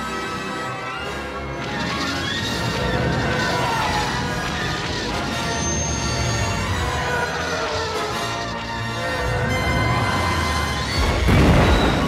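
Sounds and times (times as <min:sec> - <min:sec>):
film soundtrack music: 0:00.0 - 0:12.0
explosion boom: 0:10.9 - 0:12.0.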